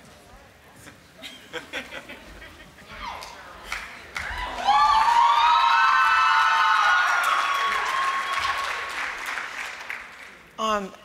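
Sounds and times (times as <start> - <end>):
people cheering: 2.9 - 10.1
audience applauding: 3.7 - 10.5.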